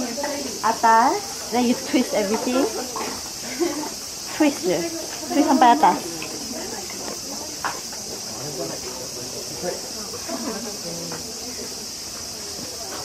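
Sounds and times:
cicadas droning: 0.0 - 13.0
people chattering: 0.0 - 13.0.

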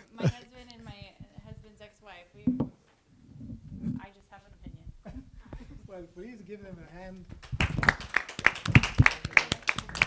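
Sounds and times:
small audience applauding: 7.4 - 10.0.

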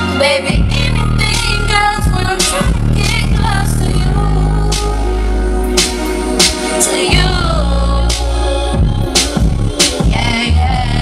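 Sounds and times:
heavy bass beat: 0.0 - 11.0
woman rapping into microphone: 0.0 - 11.0.

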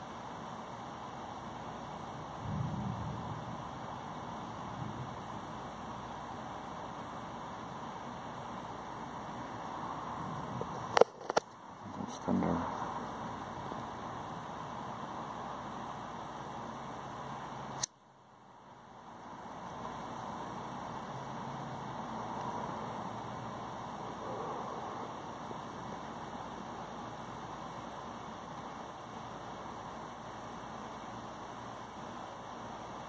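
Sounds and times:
outdoor background hiss: 0.0 - 33.0
sharp click: 17.8 - 18.0.

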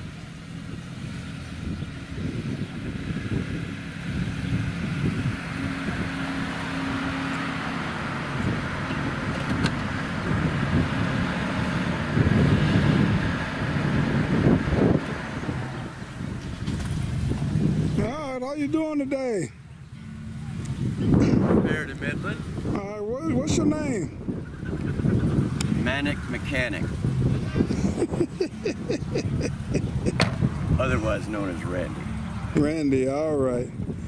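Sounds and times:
car engine driving slowly: 0.0 - 34.0.

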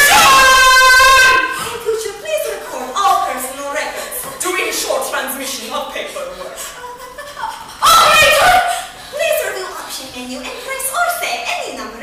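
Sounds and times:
woman's high-pitched cry: 6.4 - 9.6.

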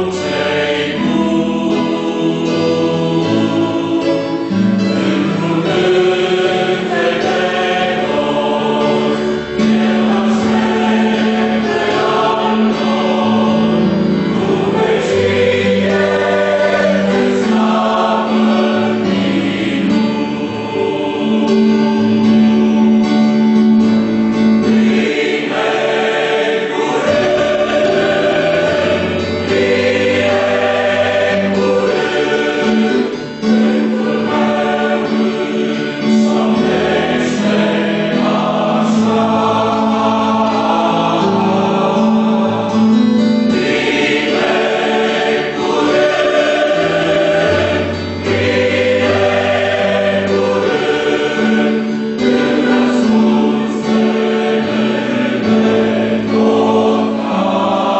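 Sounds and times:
mixed choir singing a hymn: 0.0 - 57.9.

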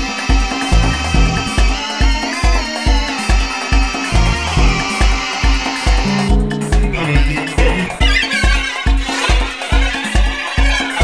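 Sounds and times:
steady kick drum: 0.8 - 1.5, 4.2 - 5.1, 6.0 - 8.0
high wavering sound: 6.0 - 8.3.

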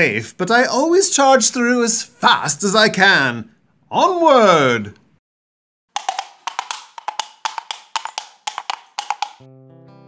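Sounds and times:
wood-block knocks: 6.0 - 9.4.

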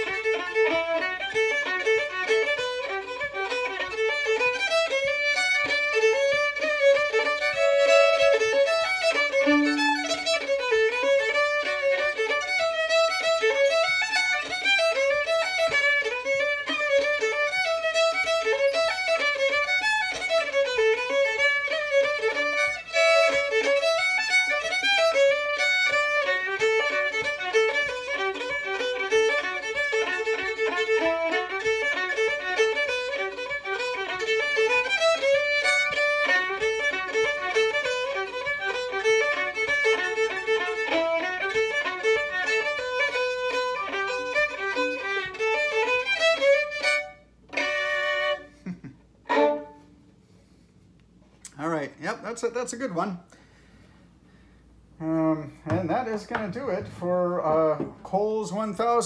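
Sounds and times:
fiddle dance tune: 0.0 - 50.7, 51.5 - 59.0.

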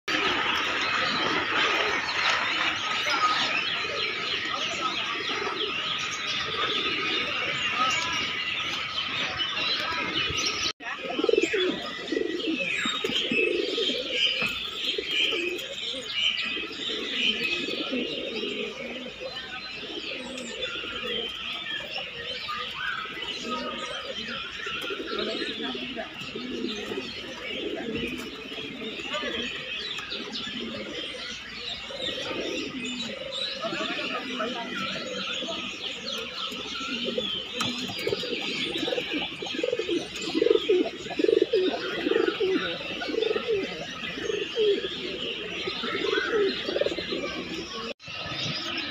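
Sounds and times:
pigeons cooing: 0.1 - 48.9
small birds chirping: 0.1 - 48.9.

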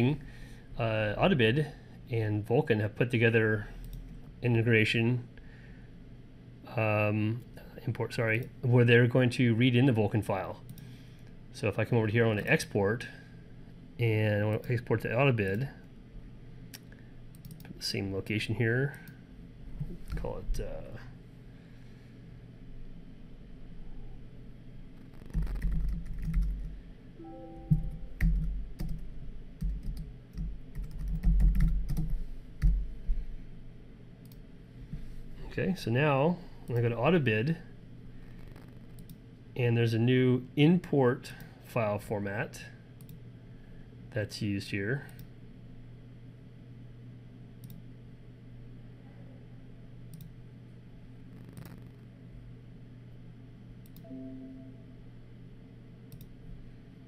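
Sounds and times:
steady low hum: 0.0 - 57.0
computer mouse clicks: 16.7 - 17.8, 38.3 - 39.2, 47.6 - 47.8, 50.1 - 50.3, 51.4 - 52.0, 56.1 - 56.4
typing on computer keyboard: 25.3 - 26.7, 27.7 - 29.0, 29.6 - 32.8
electronic notification chime: 27.2 - 28.2, 54.1 - 54.9.

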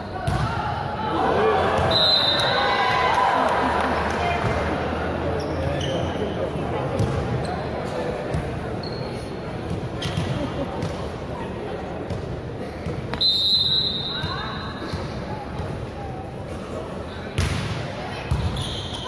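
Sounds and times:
spectators cheering and shouting: 0.3 - 4.8.

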